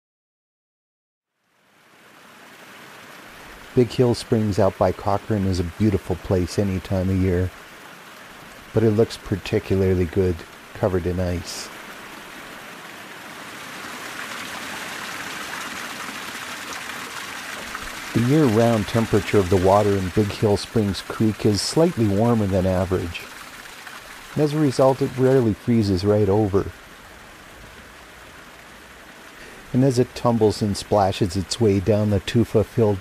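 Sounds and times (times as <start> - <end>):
creek water rushing over ice: 1.4 - 33.0.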